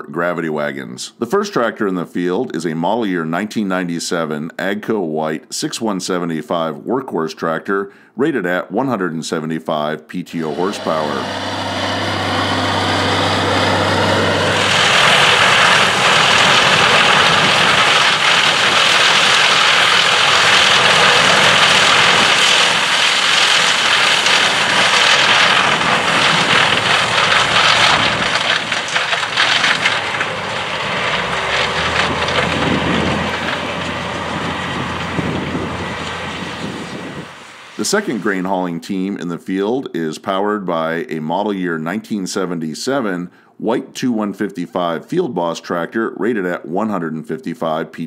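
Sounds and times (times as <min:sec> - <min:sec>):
combine harvester machine rush: 0:10.3 - 0:38.6
low engine hum: 0:10.5 - 0:37.8
tractor engine running: 0:10.5 - 0:38.2.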